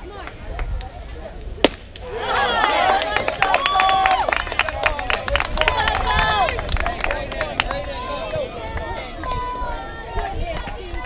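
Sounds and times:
bat cracking on ball: 0:01.6 - 0:02.1
faint voices and cheers: 0:02.0 - 0:11.0.

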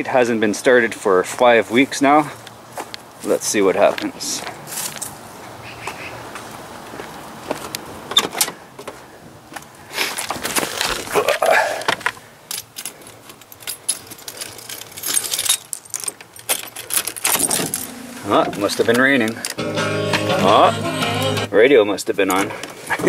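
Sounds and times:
keys jangling: 0:12.5 - 0:18.1.

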